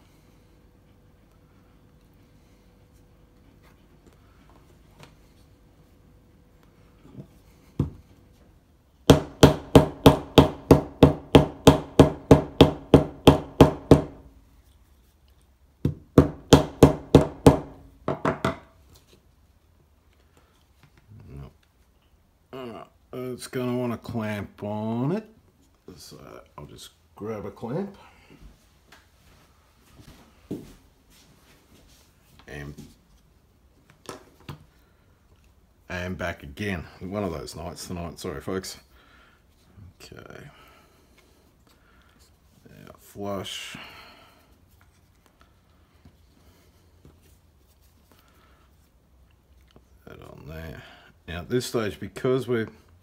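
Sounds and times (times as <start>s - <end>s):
mallet striking leather on bench: 9.1s - 14.2s, 15.8s - 18.7s.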